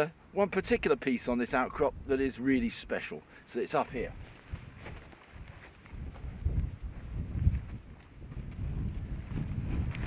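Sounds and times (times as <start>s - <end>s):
footsteps on grass: 3.8s - 10.0s
wind buffeting microphone: 3.9s - 10.0s.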